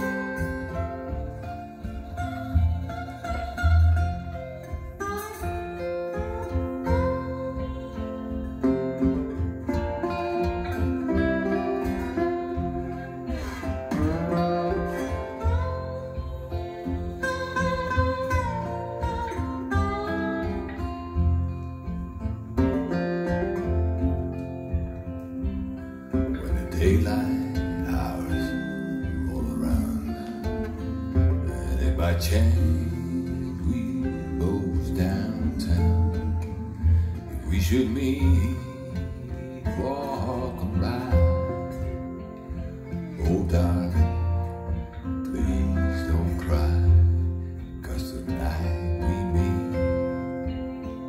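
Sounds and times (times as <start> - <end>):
slide guitar blues music: 0.0 - 51.0
steady bass: 23.4 - 51.0.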